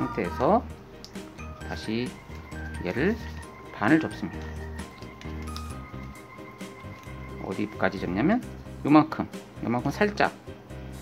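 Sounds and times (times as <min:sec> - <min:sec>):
background music with sustained notes: 0:00.0 - 0:11.0.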